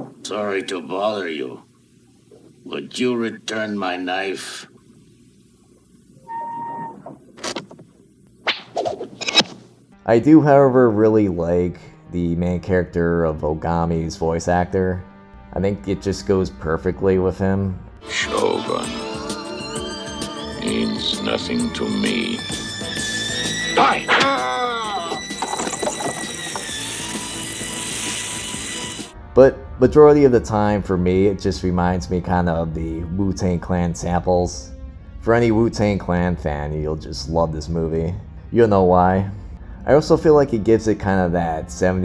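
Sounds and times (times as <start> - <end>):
high ringing tone: 6.2 - 7.0, 18.3 - 29.1.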